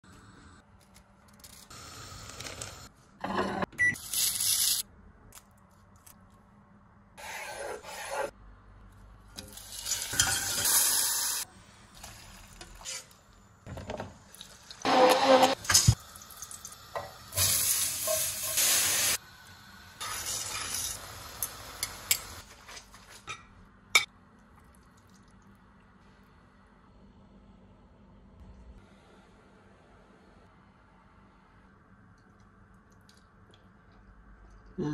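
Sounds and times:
food sizzling: 14.3 - 22.6.

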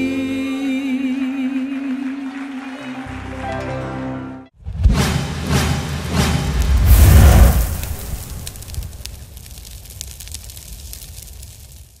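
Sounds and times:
whooshes: 4.6 - 9.2
deep boom: 4.6 - 9.4.

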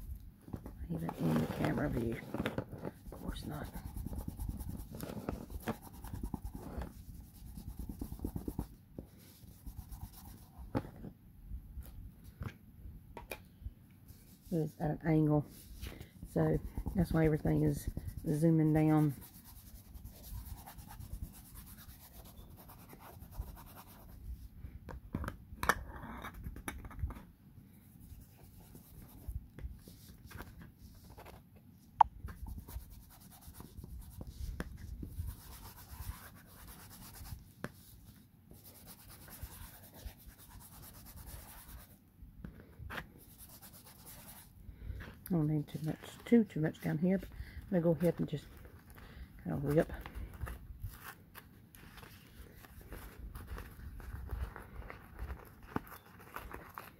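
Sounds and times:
paper rustling and scraping: 0.5 - 7.1, 49.6 - 56.9.

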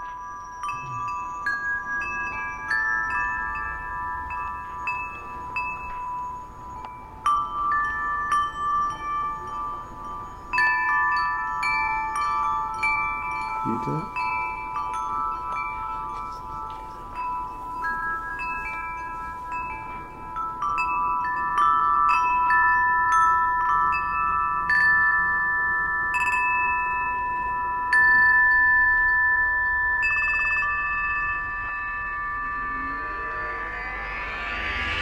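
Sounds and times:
high ringing chime tones: 0.0 - 35.0
rising whoosh: 31.5 - 35.0.

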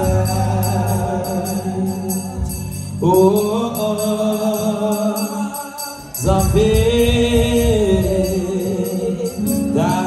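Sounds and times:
jingling percussion: 0.0 - 10.0
person singing: 0.0 - 10.0.

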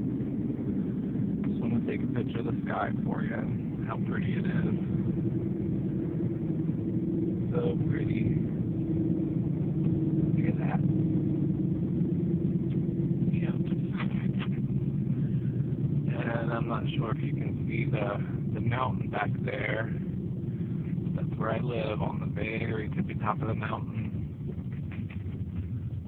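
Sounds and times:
car road and engine rumble: 0.0 - 26.0
person talking: 1.5 - 4.8, 7.5 - 8.4, 10.4 - 10.8, 16.1 - 19.9, 21.2 - 24.0.

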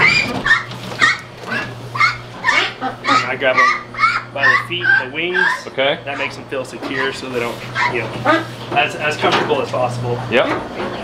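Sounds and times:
ducks quacking: 0.0 - 9.4.

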